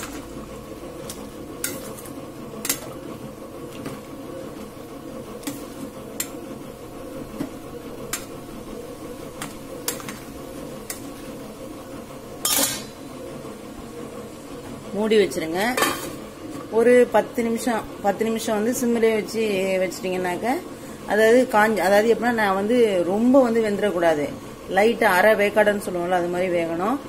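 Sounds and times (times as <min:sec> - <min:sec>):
ladle scraping pot: 0:01.0 - 0:03.0, 0:09.3 - 0:11.4.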